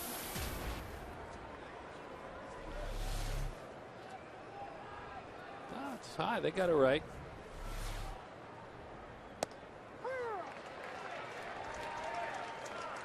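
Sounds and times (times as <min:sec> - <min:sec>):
stadium crowd murmur: 0:00.8 - 0:13.0.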